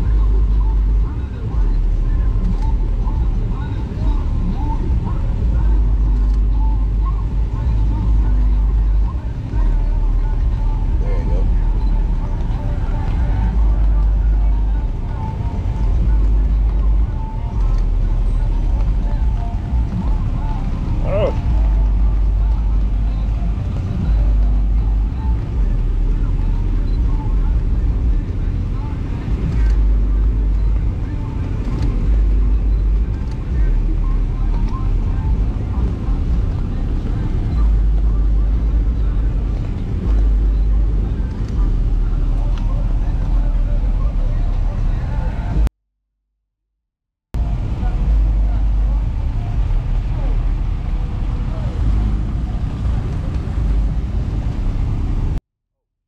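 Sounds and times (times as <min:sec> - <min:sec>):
faint voices: 0:00.0 - 0:45.7, 0:47.4 - 0:55.4.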